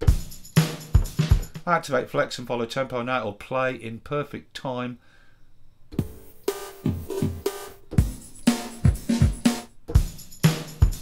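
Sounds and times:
drum kit loop: 0.0s - 1.8s, 6.0s - 11.0s.

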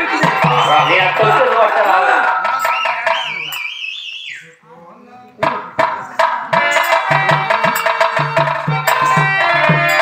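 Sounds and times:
voices: 0.0s - 10.0s
high wobbling whistle tone: 0.2s - 1.5s, 2.4s - 4.5s.

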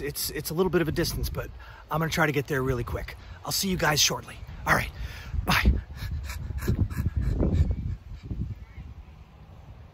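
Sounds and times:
wind rumbling on microphone: 0.0s - 9.9s.

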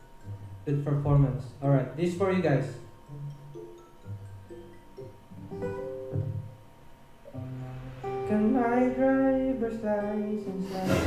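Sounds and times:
acoustic guitar chords: 0.0s - 6.6s, 7.2s - 11.0s.

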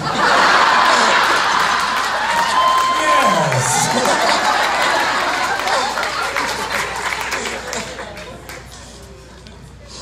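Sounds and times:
audience applauding: 0.6s - 8.7s.

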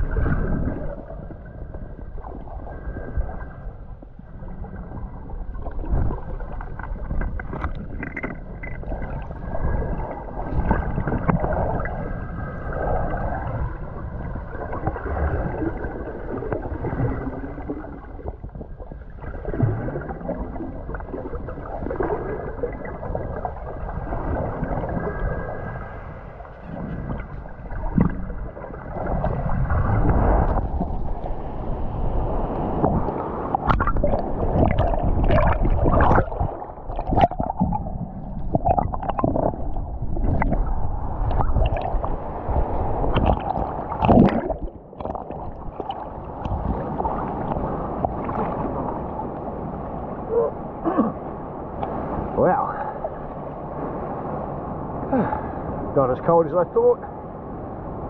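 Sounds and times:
bubbles and crackles: 0.0s - 53.8s
water gurgling and sloshing: 0.0s - 58.0s.

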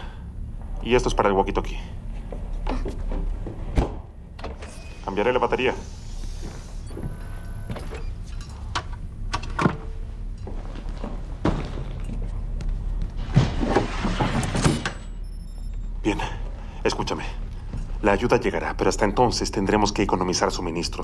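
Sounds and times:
low hum: 0.0s - 20.8s.

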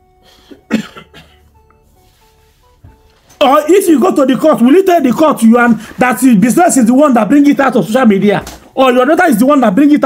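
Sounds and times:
background music of held notes: 0.0s - 10.0s
man coughing: 0.6s - 1.4s.

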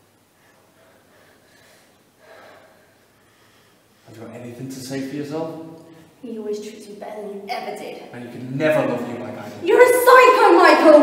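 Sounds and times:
heavy breathing: 0.4s - 4.2s.

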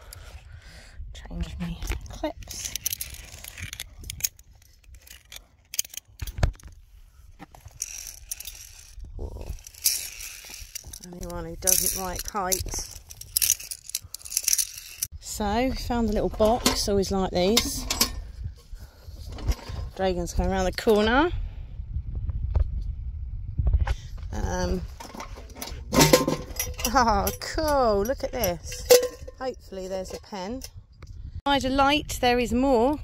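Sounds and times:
carabiners clicking on steel cable: 1.8s - 6.8s, 7.4s - 15.1s
handheld camera handling rustle: 1.8s - 15.1s.

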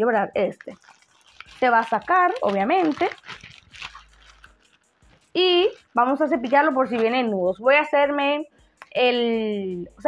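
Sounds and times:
plastic packaging crinkling: 0.4s - 7.3s
person speaking: 1.4s - 4.1s, 5.3s - 7.8s.

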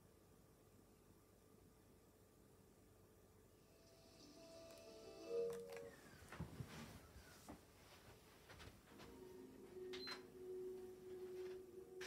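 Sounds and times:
faint electrical hum: 0.0s - 12.0s.

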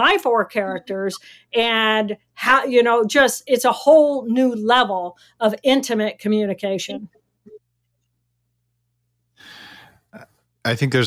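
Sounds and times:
breath into microphone: 9.4s - 10.1s.

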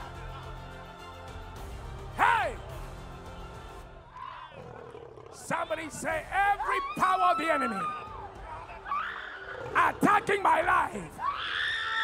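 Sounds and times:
low background music: 0.0s - 4.2s.

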